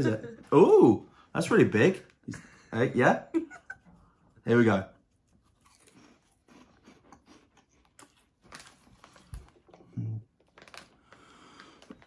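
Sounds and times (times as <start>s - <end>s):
crunchy snack being chewed: 5.3s - 9.8s.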